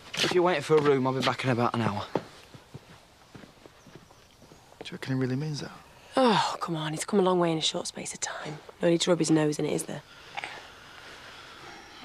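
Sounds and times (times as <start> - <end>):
footsteps on hard surface: 0.0 - 5.0.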